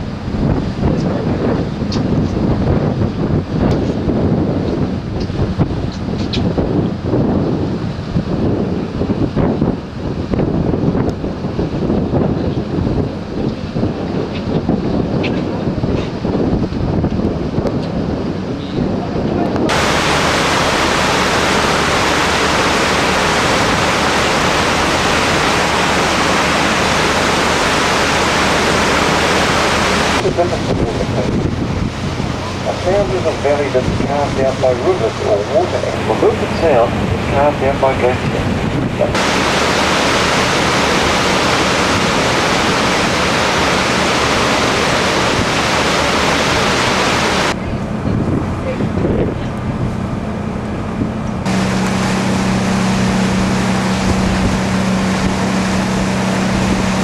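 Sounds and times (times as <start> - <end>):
boat engine rumble: 0.0 - 57.0
wind buffeting microphone: 0.0 - 57.0
loud even hiss: 19.7 - 30.5, 39.0 - 47.6.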